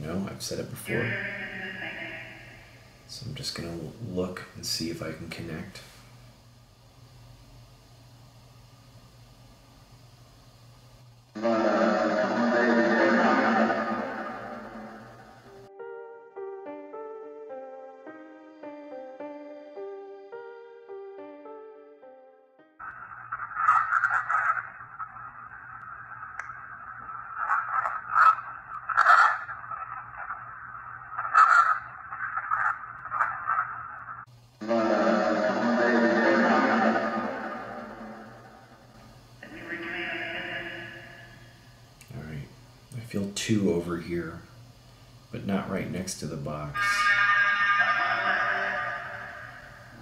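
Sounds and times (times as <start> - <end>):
distorted music-like burst from speaker: 0.0 - 3.4, 11.4 - 15.7, 34.6 - 41.6, 45.5 - 50.0
steady low hum: 0.0 - 15.8, 22.8 - 47.0, 48.2 - 50.0
hissing sweeping radio noise: 0.9 - 3.0, 11.4 - 15.7, 22.8 - 41.6, 46.6 - 50.0.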